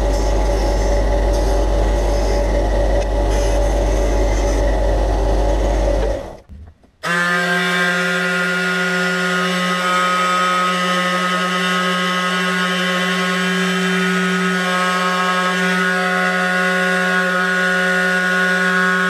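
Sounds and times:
disc sander grinding wood: 0.0 - 6.4, 7.0 - 19.0
detail sander humming on wood: 7.1 - 19.0.

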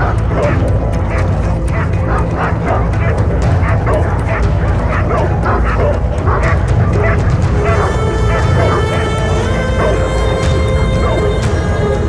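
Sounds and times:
dogs barking and yipping: 0.0 - 12.0
steady low rumble: 0.0 - 12.0.

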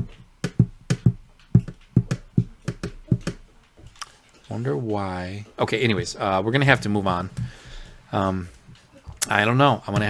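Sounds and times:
pen tapping on paper: 0.4 - 3.4.

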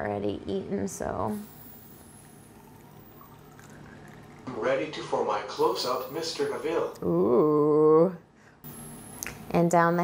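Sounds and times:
liquid trickling into syringe: 1.8 - 4.7.

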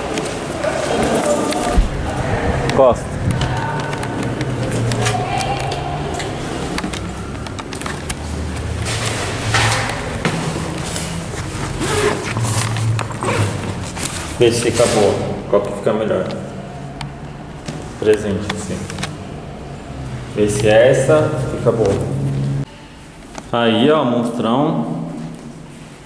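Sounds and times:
footsteps: 0.0 - 15.2
indistinct voices: 0.0 - 23.0.

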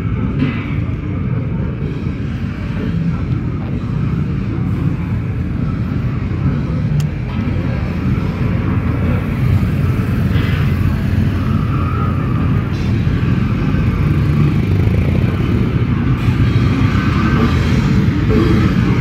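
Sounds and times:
faint voices: 0.0 - 19.0
street traffic rumble: 0.0 - 19.0.

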